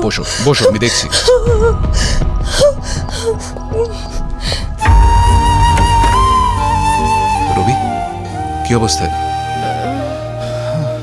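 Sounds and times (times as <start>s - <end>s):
film background music: 0.0s - 11.0s
woman sobbing: 0.4s - 4.3s
woman's wavering cries: 0.6s - 2.0s.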